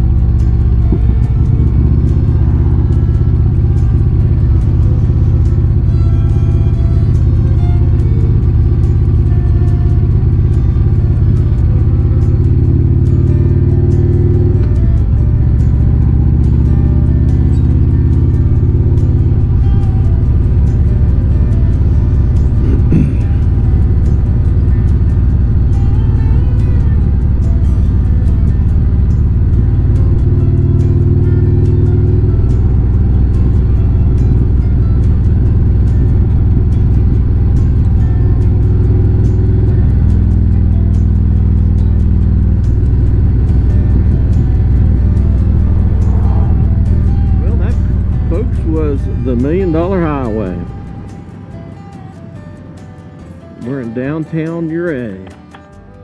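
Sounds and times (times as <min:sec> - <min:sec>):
motorcycle engine running: 0:00.0 - 0:56.0
music: 0:00.0 - 0:56.0
wind and road noise: 0:00.0 - 0:56.0.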